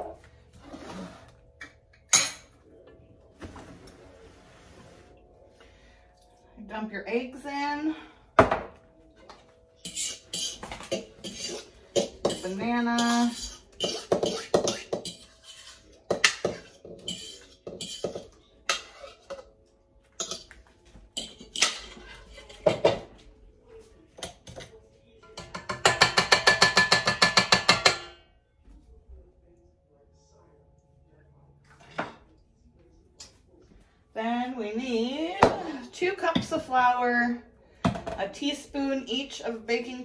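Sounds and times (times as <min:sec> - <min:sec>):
bowl and utensils clattering: 0:08.4 - 0:23.2, 0:24.2 - 0:28.2.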